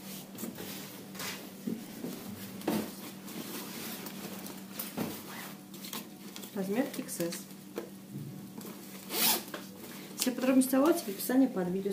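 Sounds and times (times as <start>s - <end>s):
jacket zip pulled: 9.1s - 9.5s.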